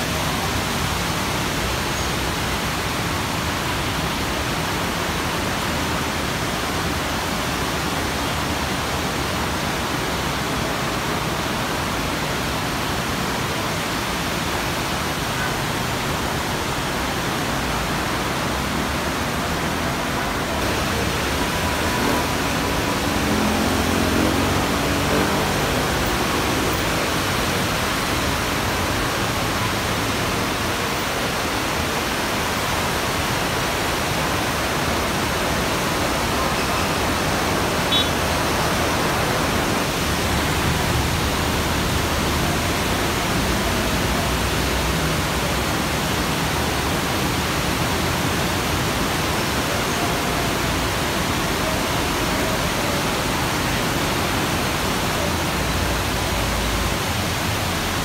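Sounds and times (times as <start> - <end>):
heavy rain falling: 0.0 - 58.0.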